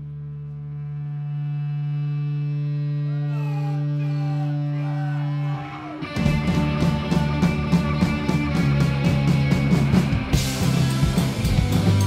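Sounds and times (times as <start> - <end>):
electric guitar drone: 0.0 - 12.0.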